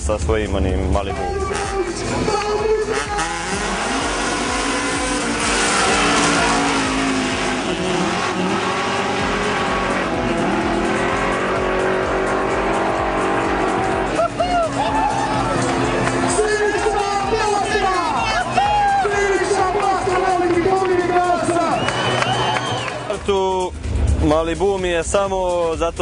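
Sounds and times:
drag race cars accelerating: 0.8s - 23.2s.

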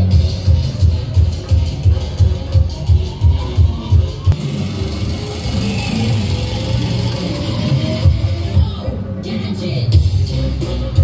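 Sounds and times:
electronic dance music: 0.0s - 11.0s
rising synth tone: 3.5s - 8.6s.

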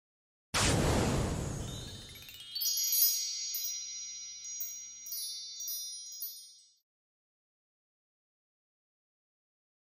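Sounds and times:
high tinkling chimes: 1.6s - 6.9s.

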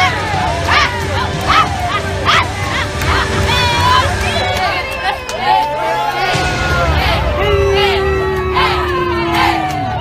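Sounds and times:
crowd din: 0.0s - 10.0s.

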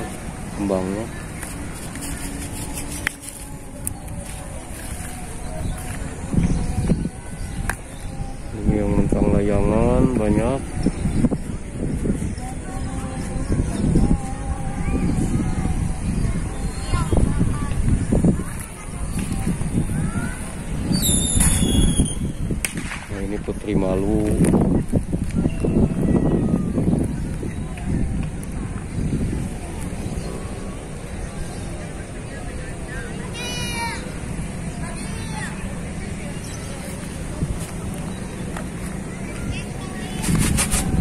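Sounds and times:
low background noise: 0.0s - 41.0s.

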